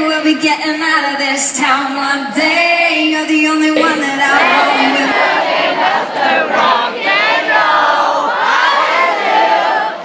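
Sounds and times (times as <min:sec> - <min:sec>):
held sung note: 0:03.8 - 0:05.5
crowd singing and shouting: 0:03.8 - 0:10.0.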